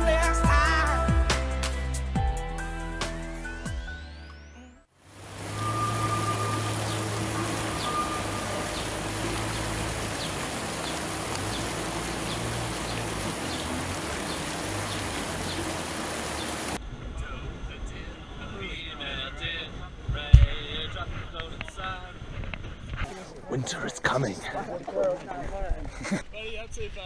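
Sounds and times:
background music: 0.0 - 4.9
low hum: 4.4 - 23.0
steady rushing outdoor noise: 5.0 - 27.0.

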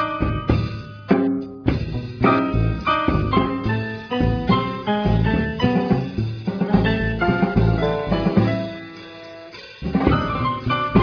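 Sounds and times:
drums: 0.0 - 11.0
jazz band playing: 0.0 - 11.0.

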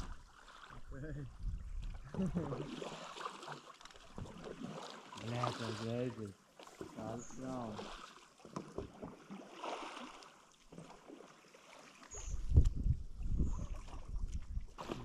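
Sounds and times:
wind buffeting microphone: 0.8 - 2.5, 12.2 - 14.8.

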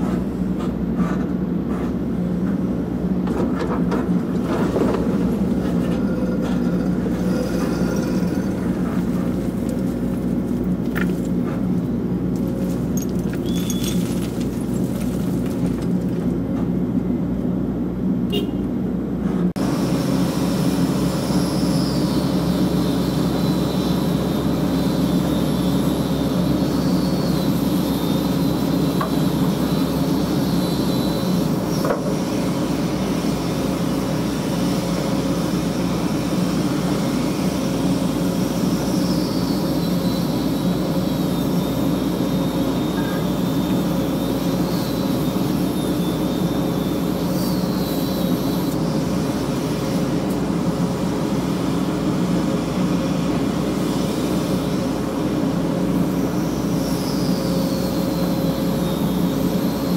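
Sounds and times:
diesel engine running: 0.0 - 59.9
faint high whine: 38.0 - 49.3.

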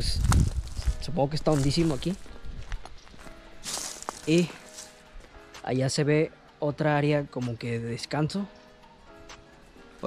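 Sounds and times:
footsteps crunching on dry leaves: 0.0 - 5.4
faint background music: 0.0 - 10.0.

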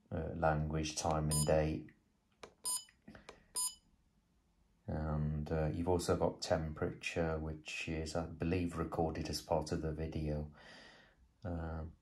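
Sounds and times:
short high electronic beep: 2.7 - 2.9, 3.6 - 3.8.

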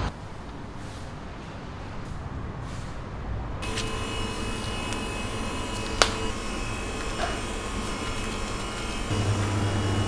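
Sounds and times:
street traffic rumble: 0.0 - 10.0
electric appliance hum with whine: 3.6 - 10.0.

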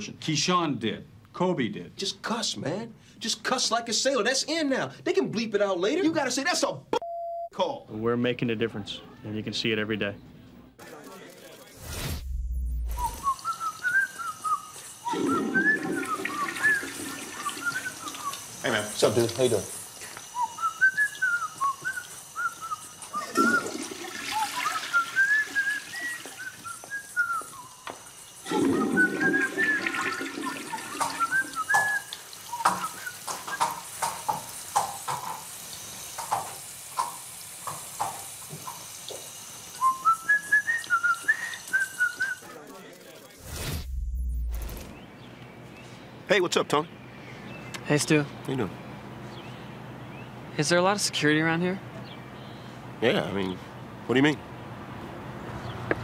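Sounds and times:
man whistling a tune: 12.9 - 18.5, 20.1 - 33.8, 39.8 - 42.4
faucet running into sink: 15.1 - 19.7, 23.1 - 26.6, 28.3 - 39.8
tap water splashing on hands: 29.2 - 35.4.

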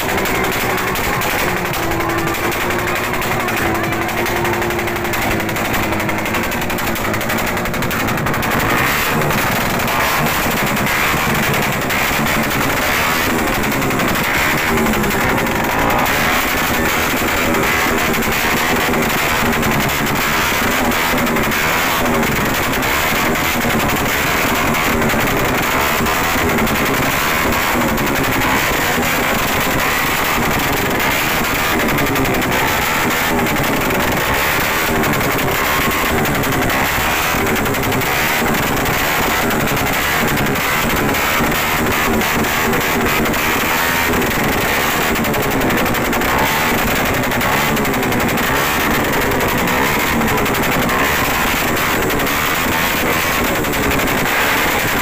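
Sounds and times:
exhaust popping backfires: 0.0 - 55.0
motorcycle exhaust revving: 0.0 - 55.0.

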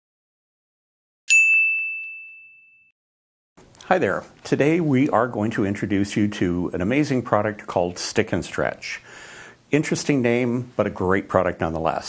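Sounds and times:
bright chime ding: 1.3 - 2.9.

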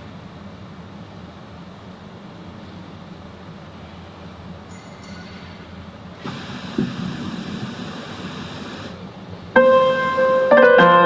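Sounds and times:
steady rushing background noise: 0.0 - 10.6
keyboard playing held chord: 9.6 - 11.0.

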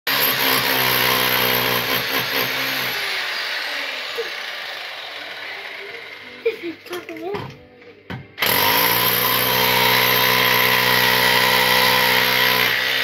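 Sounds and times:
rotary hammer chiselling floor: 0.1 - 13.0
motor winding down whine: 3.0 - 6.4.

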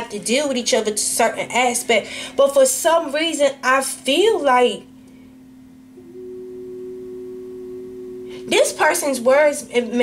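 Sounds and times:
low steady drone: 5.9 - 9.8
sustained musical note: 6.0 - 9.3.

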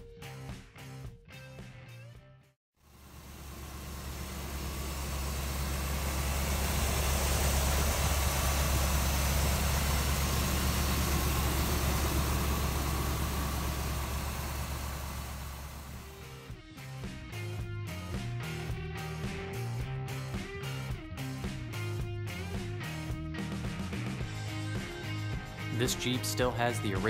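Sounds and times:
car engine idling: 2.8 - 16.4.

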